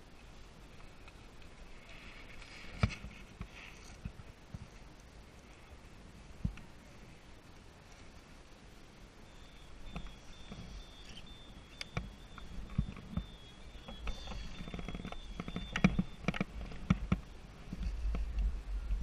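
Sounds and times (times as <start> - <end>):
skis sliding over snow: 0.0 - 9.0.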